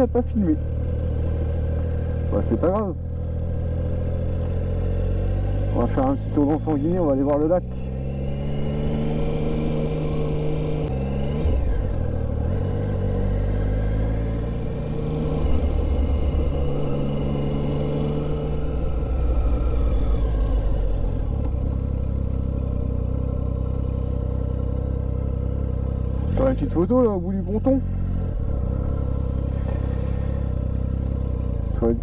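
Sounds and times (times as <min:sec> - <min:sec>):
motorcycle engine revving: 0:00.0 - 0:32.0.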